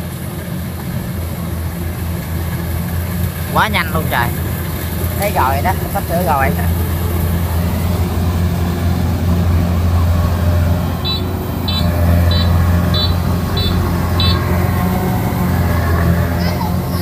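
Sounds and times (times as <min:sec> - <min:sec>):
combine harvester running: 0:00.0 - 0:17.0
short high beeps: 0:11.1 - 0:14.4.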